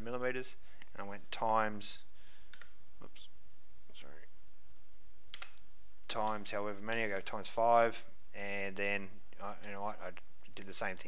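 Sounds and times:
low background noise: 0.0s - 11.0s
mouse and keyboard clicks: 5.3s - 5.6s.

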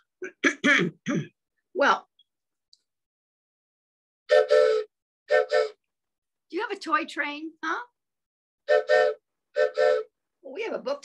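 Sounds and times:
toy train whistle: 4.3s - 5.8s, 8.7s - 10.1s.

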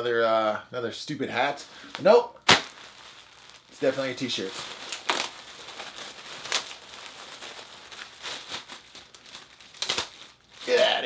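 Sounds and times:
plastic bag crinkling: 2.4s - 11.0s.

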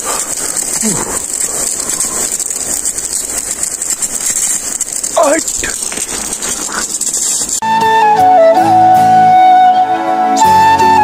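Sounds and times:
water gushing and splashing: 0.0s - 7.6s.

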